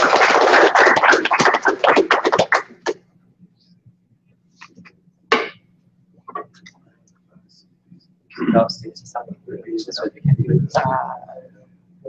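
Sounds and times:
audience applauding: 0.0 - 3.0.

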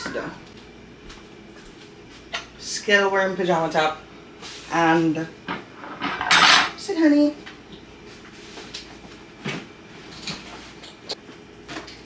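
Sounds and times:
low room hum: 0.0 - 12.0
dishes and utensils knocking: 5.4 - 6.8.

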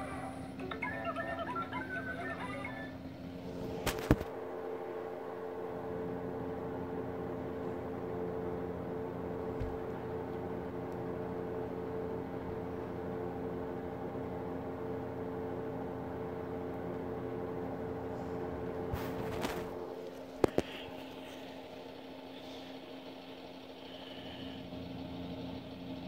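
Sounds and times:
steady tonal hum: 0.0 - 26.0.

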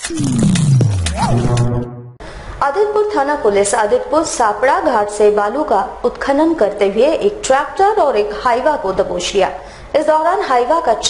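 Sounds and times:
deep falling sound effect: 0.0 - 2.2.

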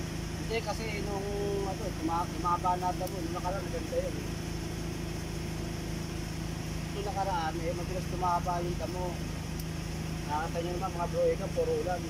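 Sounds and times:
motor humming: 0.0 - 12.0.

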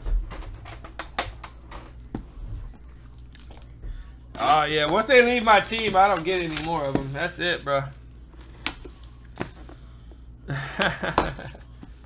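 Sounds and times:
plastic wrap clicks and crinkles: 4.4 - 7.3.

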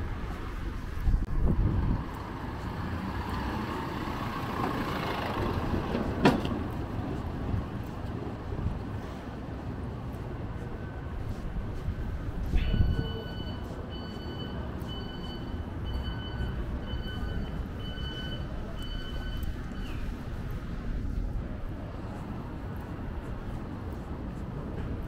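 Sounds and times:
street rumble: 0.0 - 25.0
small truck engine driving slowly: 0.1 - 12.4.

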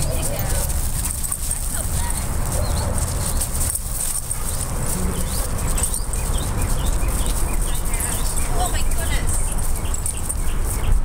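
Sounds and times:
dogs play-wrestling on gravel: 0.0 - 11.0
steady low rumble: 0.0 - 11.0.

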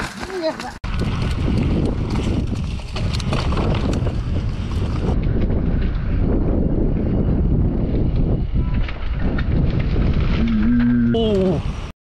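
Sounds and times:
bike clicks and knocks: 0.0 - 6.1
wind buffeting microphone: 0.8 - 11.9.

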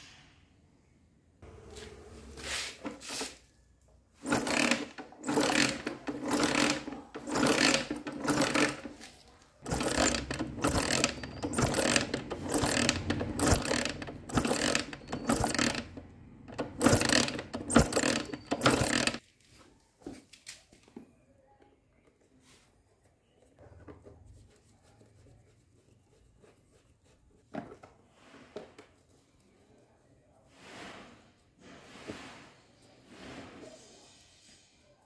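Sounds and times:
kick-start gears whirring: 4.2 - 9.0, 9.6 - 19.2.

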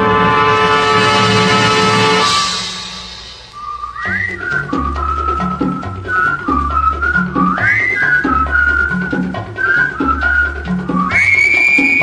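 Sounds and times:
whistled melody: 2.2 - 12.0.

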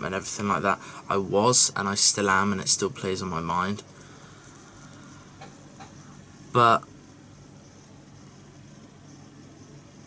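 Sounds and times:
faint microphone hiss: 0.0 - 10.0.

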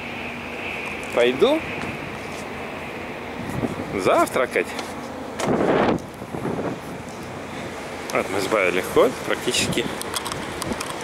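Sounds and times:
steady wind noise: 0.0 - 11.0.

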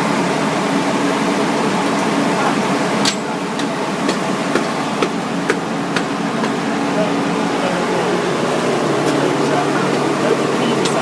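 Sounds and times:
machinery humming: 0.0 - 11.0.

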